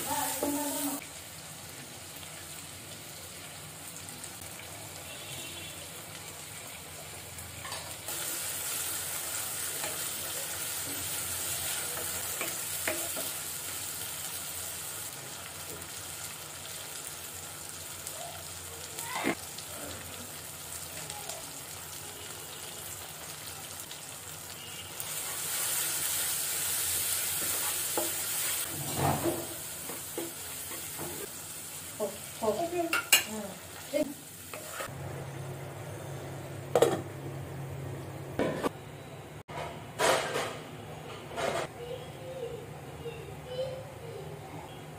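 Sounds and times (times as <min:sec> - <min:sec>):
hot oil sizzling: 0:00.0 - 0:37.3
spoon scraping against pan: 0:34.5 - 0:35.0.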